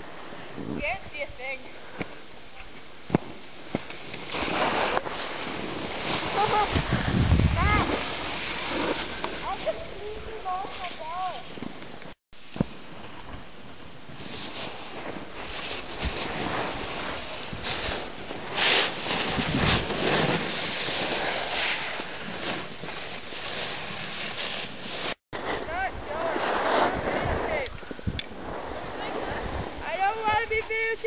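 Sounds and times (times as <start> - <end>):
skis sliding over packed snow: 0.0 - 31.0
wind rushing over microphone: 4.4 - 10.5, 15.2 - 21.3, 25.4 - 31.0.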